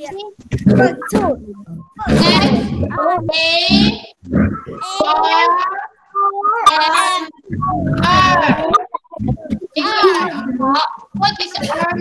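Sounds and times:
children calling out: 2.0 - 9.2.

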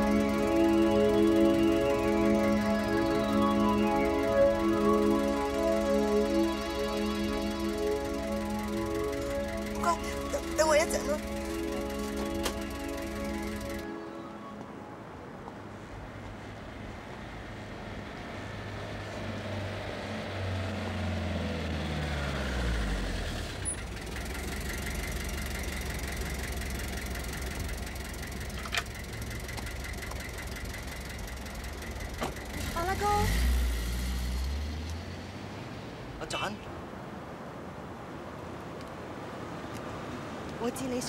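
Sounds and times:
car engine humming: 0.0 - 41.0.

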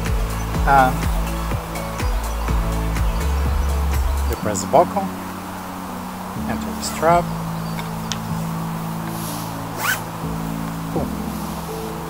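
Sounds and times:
background music with held chords: 0.0 - 12.0
strap zipping through buckle: 9.0 - 10.1
short hiss: 9.1 - 10.2.

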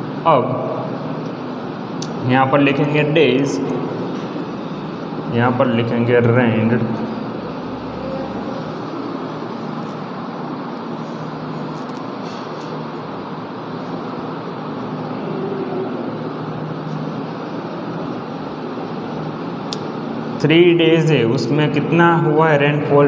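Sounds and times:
low hum with hiss: 0.0 - 23.0.

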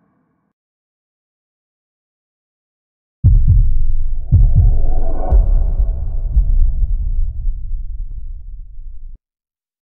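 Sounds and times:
deep bass thumps: 3.2 - 9.2
sustained synth tone: 4.2 - 7.3.

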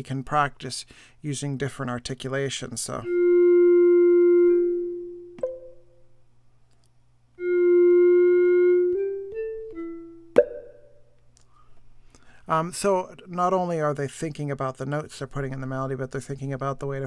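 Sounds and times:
synthesized held notes: 3.0 - 6.2, 7.4 - 11.2
sharp percussive tap: 5.4 - 5.8, 10.4 - 10.8.

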